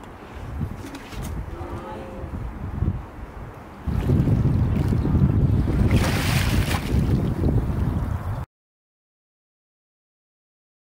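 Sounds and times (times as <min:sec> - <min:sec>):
wind buffeting microphone: 0:00.0 - 0:08.5.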